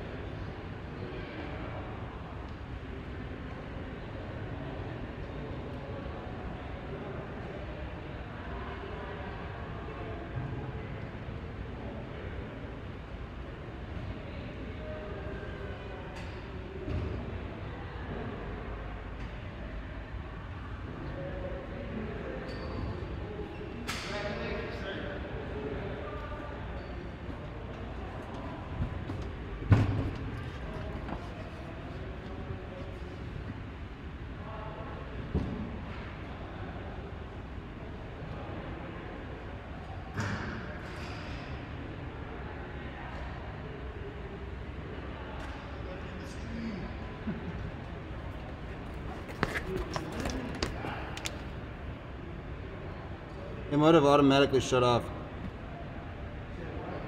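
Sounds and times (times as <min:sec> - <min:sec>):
faint echoing voices: 0:00.0 - 0:57.0.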